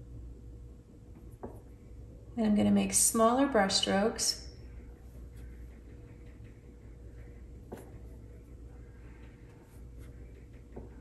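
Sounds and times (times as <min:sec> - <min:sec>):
low steady hum: 0:00.0 - 0:11.0
paintbrush dabbing on paper: 0:04.8 - 0:11.0.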